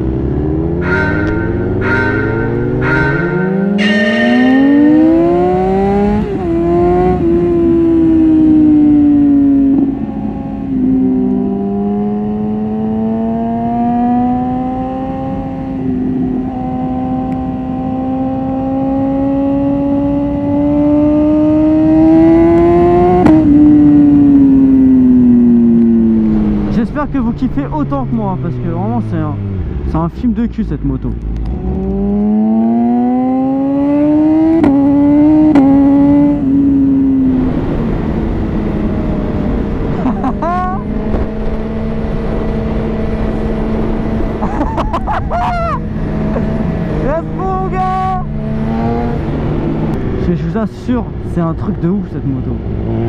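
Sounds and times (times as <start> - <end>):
motorcycle engine accelerating: 0.0 - 30.2, 31.1 - 53.0
wind rushing over microphone: 34.0 - 47.5.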